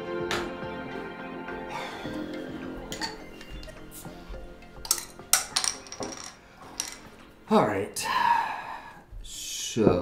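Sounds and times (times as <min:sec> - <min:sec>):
soft background music: 0:00.0 - 0:10.0
glass bottle clinks and knocks: 0:02.9 - 0:03.8, 0:04.8 - 0:07.2.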